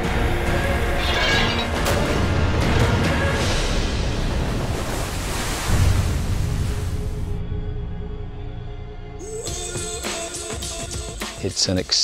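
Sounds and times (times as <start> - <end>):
waves crashing: 2.9 - 7.3.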